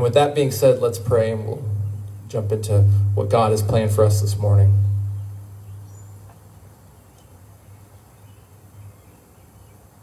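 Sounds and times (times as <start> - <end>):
low steady hum: 0.0 - 8.0.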